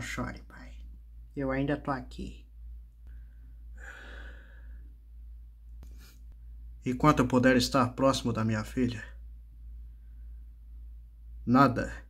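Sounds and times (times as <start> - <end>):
low hum: 0.0 - 12.0.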